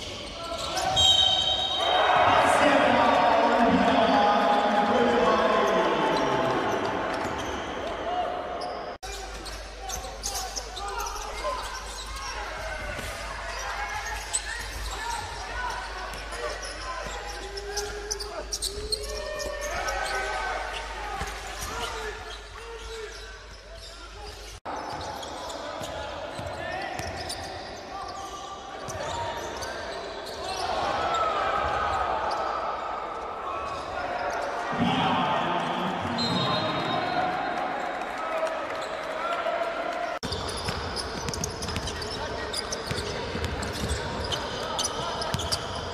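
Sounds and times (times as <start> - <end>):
basketball bouncing on court: 25.8 - 27.4, 40.2 - 45.9.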